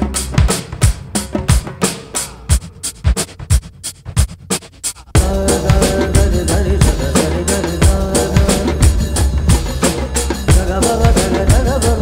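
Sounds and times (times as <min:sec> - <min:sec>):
low drum strikes: 0:05.2 - 0:12.0.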